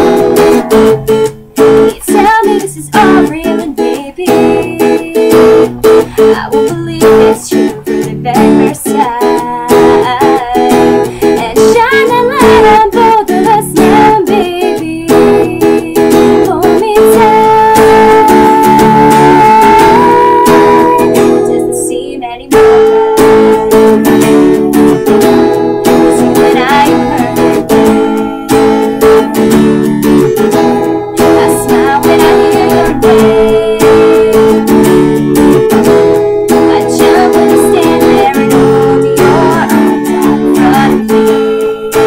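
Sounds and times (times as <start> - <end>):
acoustic guitar strumming: 0.0 - 42.0
woman singing: 1.6 - 42.0.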